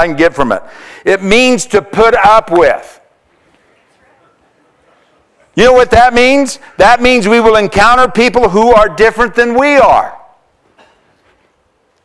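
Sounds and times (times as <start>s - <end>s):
man speaking: 0.0s - 3.1s, 5.5s - 10.4s.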